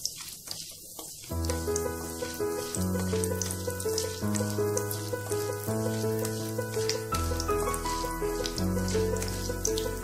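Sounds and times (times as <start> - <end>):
hot oil sizzling and crackling: 0.0 - 10.0
background music held chords: 1.4 - 10.0.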